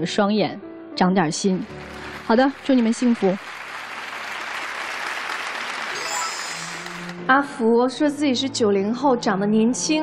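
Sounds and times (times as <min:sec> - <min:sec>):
studio audience applauding: 0:01.6 - 0:07.3
short musical cue: 0:06.0 - 0:07.3.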